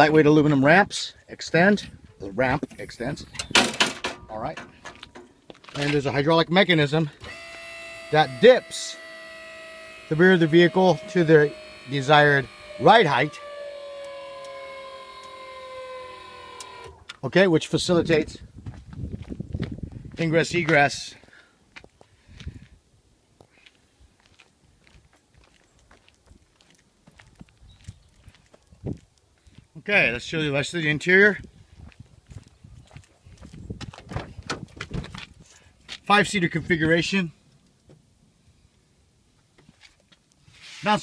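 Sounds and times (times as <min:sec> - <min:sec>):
footsteps: 0:04.3 - 0:06.2, 0:18.6 - 0:22.8, 0:23.4 - 0:29.7, 0:31.8 - 0:36.1
hydraulic pump whine: 0:07.1 - 0:17.1.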